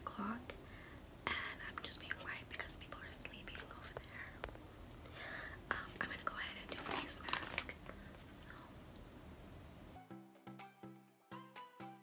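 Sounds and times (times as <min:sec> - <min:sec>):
person whispering: 0:01.3 - 0:04.5, 0:05.7 - 0:08.8.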